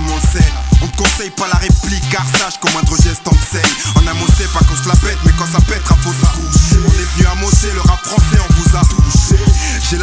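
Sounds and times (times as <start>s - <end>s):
heavy bass: 0.0s - 10.0s
rapping over a beat: 0.0s - 10.0s.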